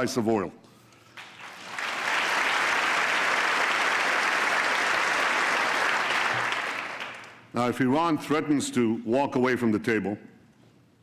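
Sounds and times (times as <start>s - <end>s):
audience applauding: 1.2s - 7.4s.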